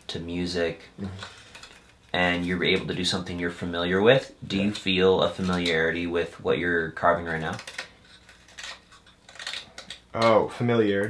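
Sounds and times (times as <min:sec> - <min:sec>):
knife scratching wood: 0:07.5 - 0:09.8.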